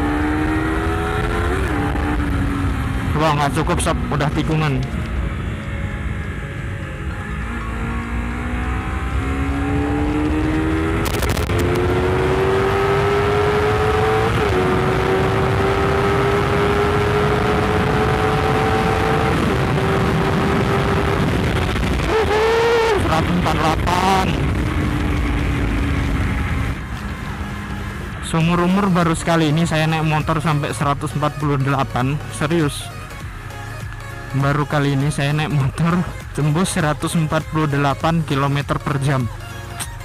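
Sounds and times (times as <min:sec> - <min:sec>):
motorcycle engine revving: 0:00.0 - 0:39.2.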